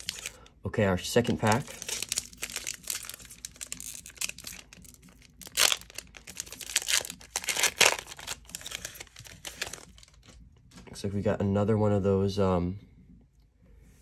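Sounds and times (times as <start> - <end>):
foil wrapper tearing and crinkling: 0.0 - 0.4, 1.3 - 10.4.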